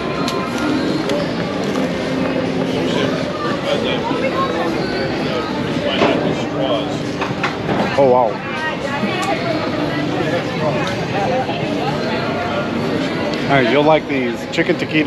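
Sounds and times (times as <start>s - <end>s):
diners chatting: 0.0s - 15.0s
street background noise: 0.0s - 15.0s.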